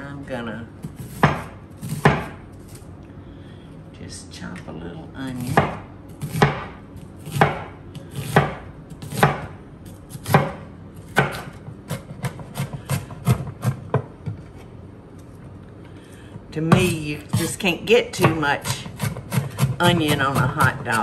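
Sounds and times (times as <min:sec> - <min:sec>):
knife chopping on wooden board: 0:00.8 - 0:02.4, 0:05.4 - 0:14.1, 0:16.7 - 0:21.0.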